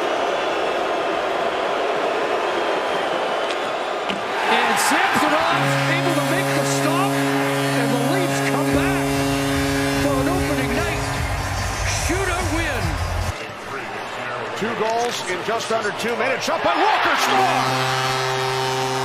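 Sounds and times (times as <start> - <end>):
crowd cheering and whistling: 0.0 - 19.0
goal horn multi-note chord: 5.0 - 13.2, 17.3 - 19.0.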